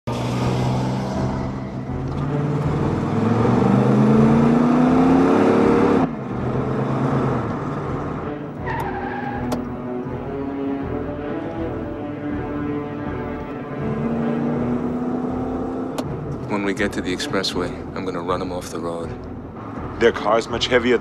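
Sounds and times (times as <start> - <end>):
car engine accelerating hard: 0.1 - 8.9, 13.7 - 16.1.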